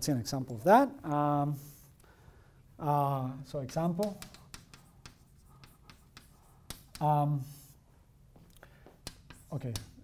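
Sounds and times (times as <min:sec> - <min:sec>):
chalk tapping and scratching: 0:03.5 - 0:07.7, 0:08.3 - 0:10.0.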